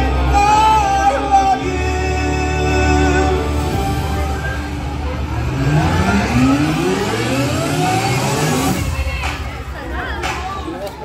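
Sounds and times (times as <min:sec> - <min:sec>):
steady low bass: 0:00.0 - 0:10.8
rising engine-like pitched tone: 0:01.9 - 0:09.2.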